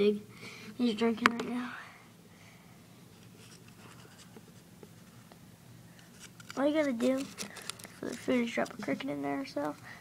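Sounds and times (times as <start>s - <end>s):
low steady hum: 0.0s - 10.0s
faint scratching: 3.2s - 4.6s.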